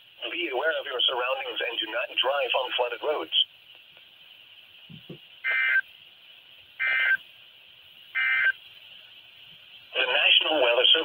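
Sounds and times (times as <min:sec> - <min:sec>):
radio hiss: 0:00.0 - 0:11.0
two-tone digital data bursts: 0:05.4 - 0:05.8, 0:06.8 - 0:07.2, 0:08.2 - 0:08.6.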